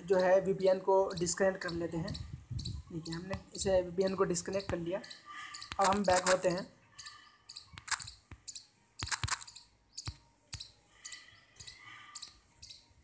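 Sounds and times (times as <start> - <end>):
faint background noise: 0.0 - 13.0.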